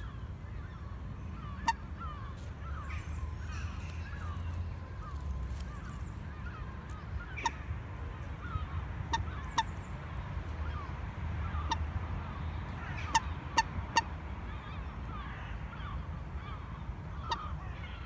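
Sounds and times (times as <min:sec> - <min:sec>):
moorhen short sharp calls: 0:00.0 - 0:10.0, 0:10.6 - 0:18.0
faint bird chatter: 0:00.0 - 0:18.0
low steady rumble: 0:00.0 - 0:18.0.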